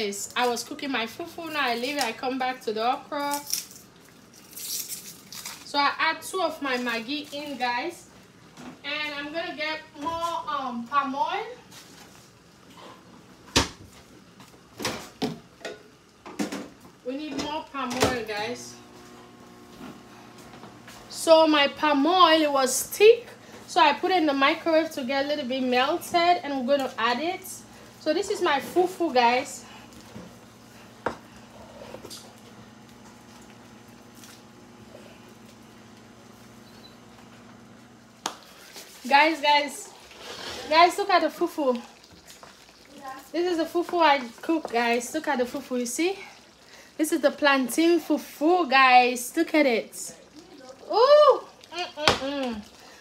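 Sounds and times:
low electrical hum: 0.0s - 53.0s.

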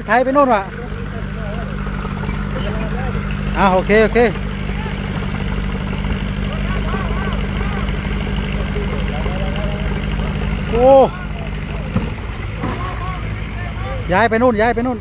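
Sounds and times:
tractor diesel engine under load: 0.0s - 15.0s
wheels churning in mud: 0.0s - 15.0s
man shouting: 6.5s - 8.0s.

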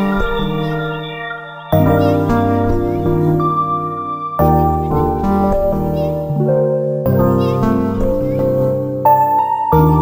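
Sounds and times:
instrumental music with held notes: 0.0s - 10.0s.

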